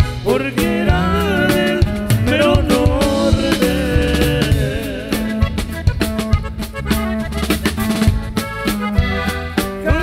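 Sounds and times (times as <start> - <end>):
button accordion melody: 0.0 - 10.0
drum kit steady beat: 0.0 - 10.0
electric bass: 0.0 - 10.0.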